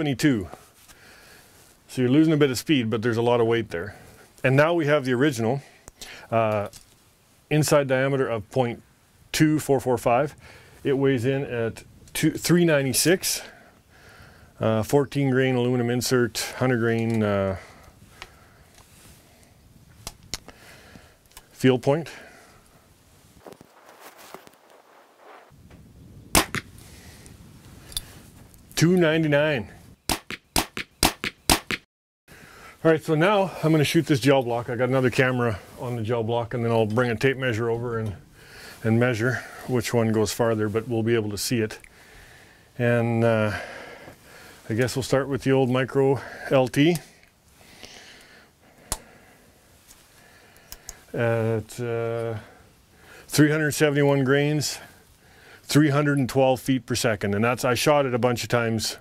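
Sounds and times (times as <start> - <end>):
faint steady hiss: 0.0 - 30.0, 32.3 - 59.0
bow handling clicks and rustles: 5.8 - 7.1, 16.8 - 17.3, 23.3 - 25.8.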